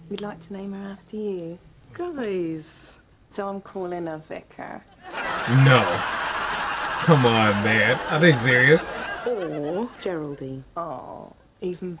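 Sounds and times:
studio audience laughing: 0:05.0 - 0:10.3.

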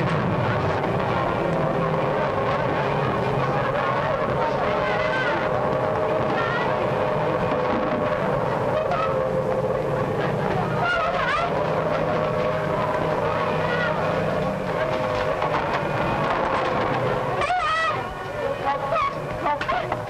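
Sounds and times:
siren wailing: 0:00.0 - 0:19.9
low rumble: 0:00.0 - 0:20.0
people crying out: 0:00.0 - 0:20.0.

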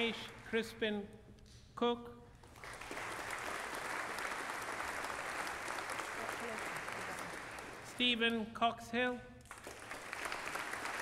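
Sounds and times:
audience applauding: 0:02.4 - 0:08.0, 0:09.5 - 0:11.0.

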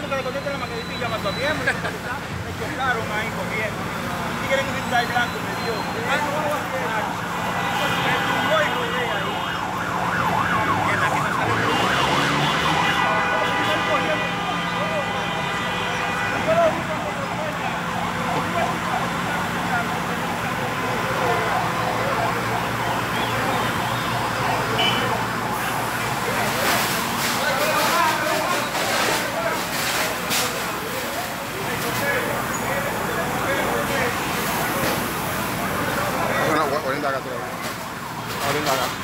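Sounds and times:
emergency vehicle sirens: 0:00.0 - 0:39.0
voices: 0:00.0 - 0:39.0.

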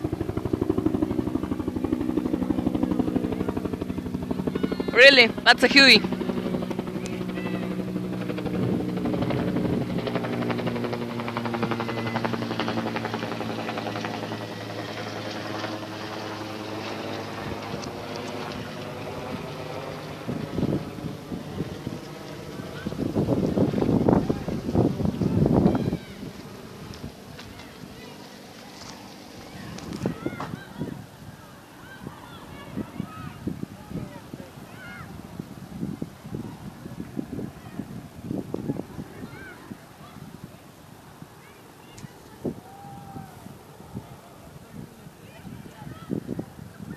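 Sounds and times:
helicopter passing overhead: 0:00.0 - 0:46.9.

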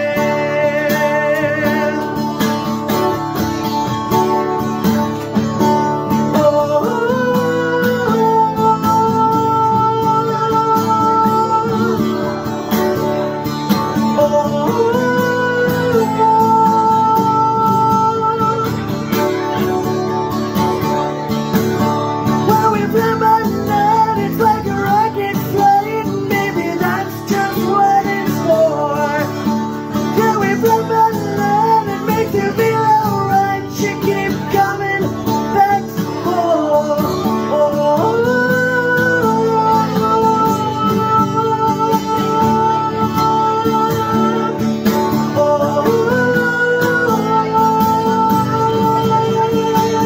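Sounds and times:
acoustic guitar playing: 0:00.0 - 0:50.0.

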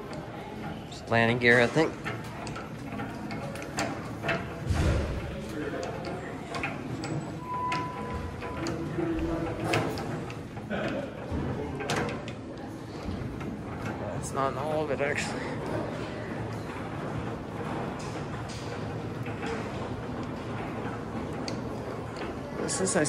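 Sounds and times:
hand crank clunks and rattles: 0:00.0 - 0:15.3, 0:16.4 - 0:23.0
voices in large hall: 0:00.0 - 0:23.0.

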